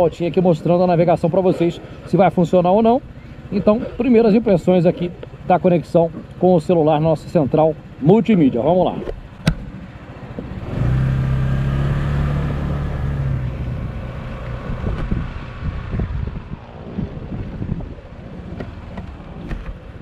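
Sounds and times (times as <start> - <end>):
scooter engine pulling away: 10.0 - 16.9.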